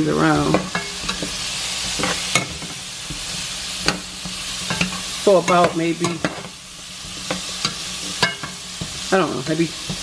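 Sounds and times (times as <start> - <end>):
potatoes sizzling in oil: 0.0 - 10.0
metal tongs clinking on pot: 0.2 - 1.3, 3.8 - 6.5, 7.2 - 10.0.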